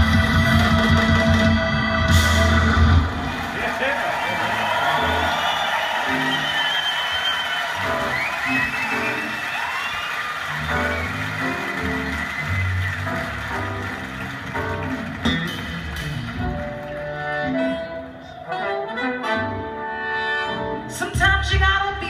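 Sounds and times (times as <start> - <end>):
bass line: 0.0 - 3.4, 10.5 - 18.2
live band playing: 0.0 - 22.0.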